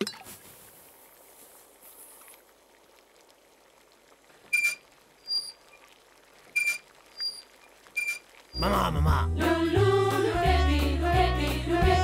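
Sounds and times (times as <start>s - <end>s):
tricycle squeaks: 4.5s - 5.6s, 6.6s - 7.4s, 8.0s - 8.7s.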